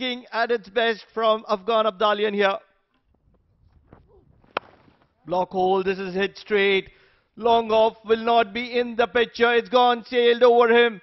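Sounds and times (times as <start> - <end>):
faint ground noise: 2.9 - 5.3
cricket bat striking ball: 3.9 - 5.1.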